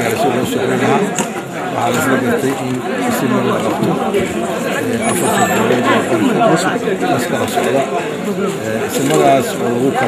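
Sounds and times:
man talking: 0.0 - 4.0
voices chattering: 0.0 - 10.0.

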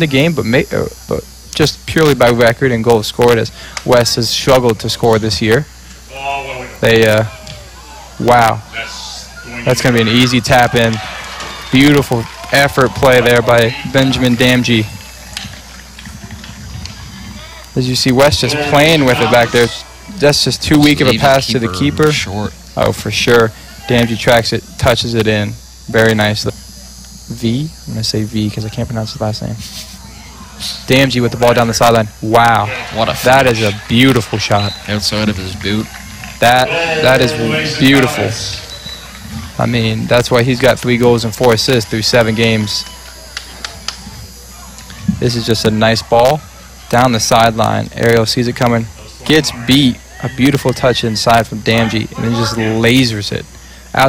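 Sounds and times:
low steady hum: 0.0 - 54.0
field noise: 2.0 - 54.0.

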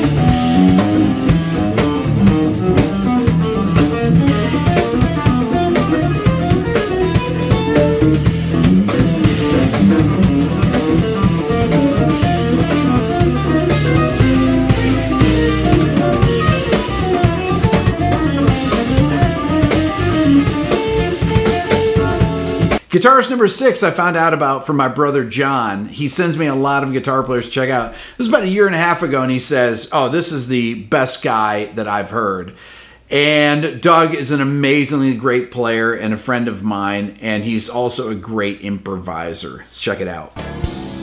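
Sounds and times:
electric guitar lines: 0.0 - 22.8, 40.4 - 41.0
funky live band playing: 0.0 - 22.8, 40.4 - 41.0.

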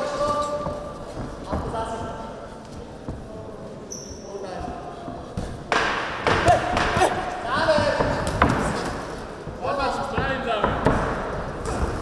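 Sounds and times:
people shouting: 6.2 - 7.4.

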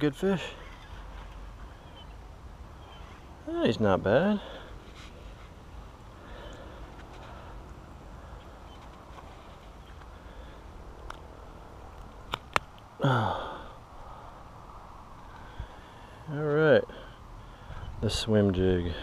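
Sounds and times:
sharp clicks: 11.9 - 12.9.

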